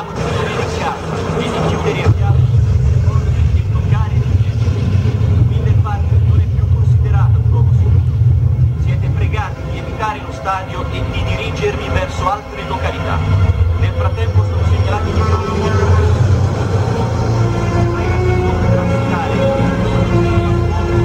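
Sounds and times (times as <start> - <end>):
heavy low rumble: 0.0 - 21.0.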